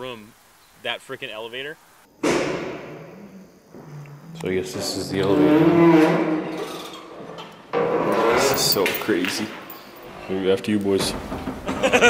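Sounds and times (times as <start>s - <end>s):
sudden thump: 2.2s - 4.0s.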